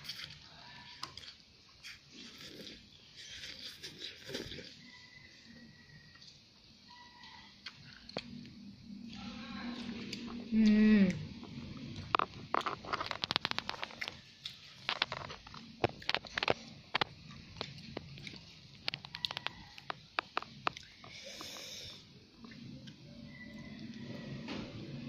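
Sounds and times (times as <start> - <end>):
wet chewing: 0.0 - 5.1, 7.3 - 24.0.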